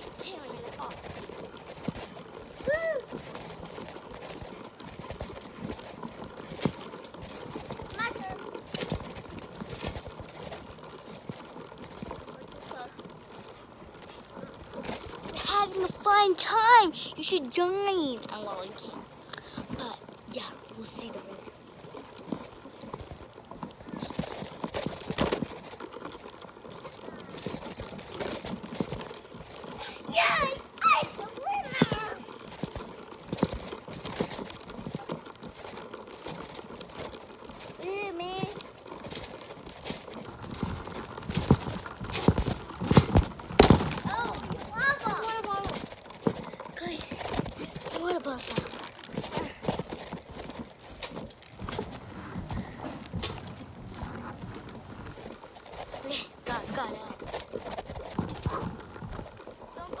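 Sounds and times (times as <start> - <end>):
children's voices: 29.6 - 32.4, 44.0 - 45.8.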